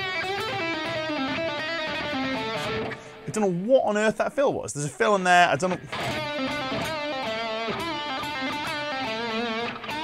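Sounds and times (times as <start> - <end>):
electric guitar melody with vibrato: 0.0 - 3.3, 5.8 - 10.0.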